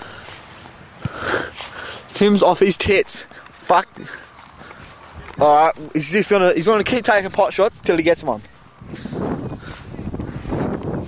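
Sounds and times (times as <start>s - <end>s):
breathy rush of noise: 0.0s - 2.2s
boot kicking football: 1.0s - 1.7s.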